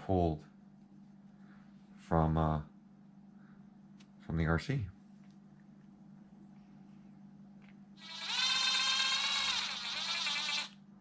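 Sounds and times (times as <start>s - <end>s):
drill driving screw into plastic: 8.0s - 10.8s.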